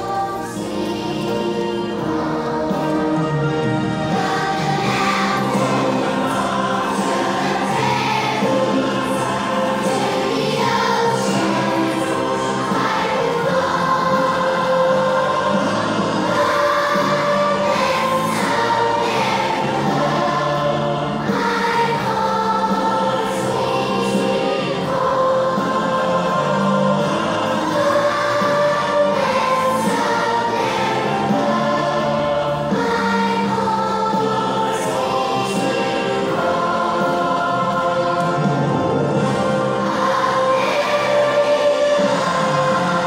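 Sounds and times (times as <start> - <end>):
children's choir singing: 0.0 - 43.0.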